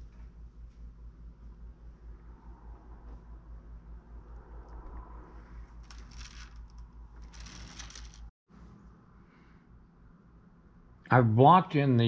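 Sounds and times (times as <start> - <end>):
soft scraping rustles: 5.6 - 8.3.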